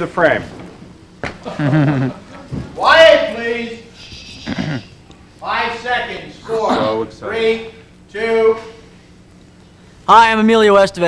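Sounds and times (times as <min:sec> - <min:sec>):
people laughing: 0:01.2 - 0:02.8, 0:04.3 - 0:05.0, 0:06.4 - 0:07.1.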